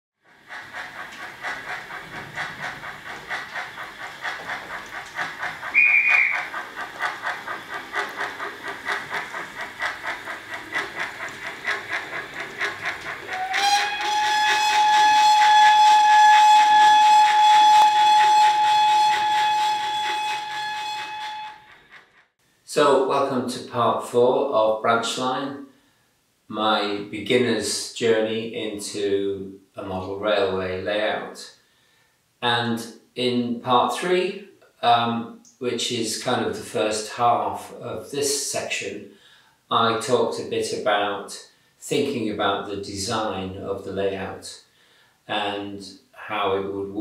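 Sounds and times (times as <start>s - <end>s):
steam locomotive chuffing: 0.2s - 22.9s
long steady whistle: 5.6s - 6.6s, 13.3s - 21.8s
short whistle toot: 5.7s - 6.4s.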